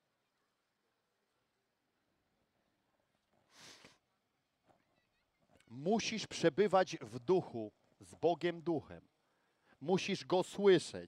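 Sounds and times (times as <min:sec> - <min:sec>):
brief soft hiss: 0:03.5 - 0:04.0.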